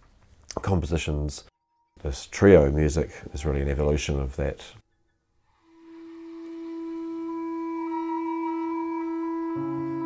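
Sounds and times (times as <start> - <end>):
wooden flute: 5.4 - 10.0
clarinet: 5.6 - 10.0.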